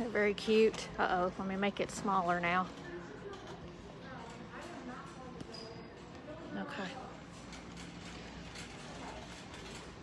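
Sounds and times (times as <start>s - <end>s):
shopping cart rattling: 6.7s - 10.0s
cart wheels rolling on hard floor: 7.3s - 10.0s.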